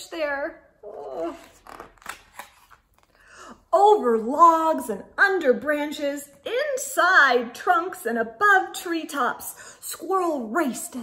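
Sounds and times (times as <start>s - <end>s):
book page turning: 1.0s - 3.2s.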